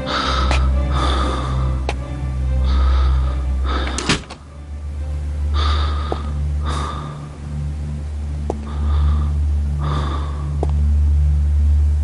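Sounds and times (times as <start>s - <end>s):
person breathing heavily: 0.0s - 4.6s, 5.4s - 11.4s
low steady hum: 0.0s - 12.0s.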